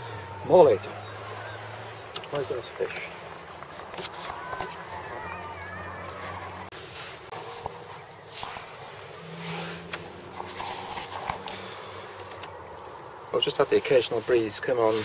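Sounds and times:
faint bird chirps: 0:00.0 - 0:03.1.

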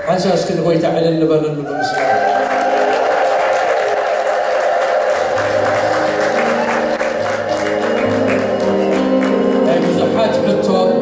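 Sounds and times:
hand-clapping: 0:01.9 - 0:10.6
electronic keyboard chords: 0:02.3 - 0:11.0.

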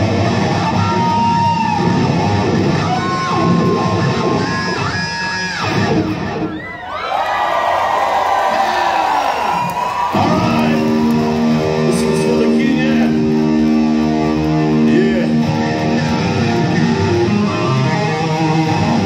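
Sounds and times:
electric guitar solo: 0:00.0 - 0:07.0, 0:10.1 - 0:19.0.

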